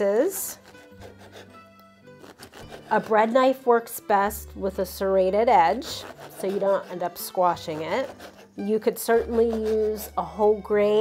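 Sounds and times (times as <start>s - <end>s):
bread knife sawing crusty bread: 0.2s - 3.5s, 5.3s - 10.6s.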